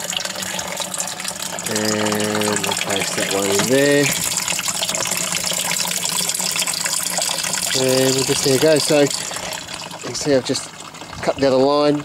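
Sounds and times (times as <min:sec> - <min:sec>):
water pouring into drum: 0:00.0 - 0:12.0.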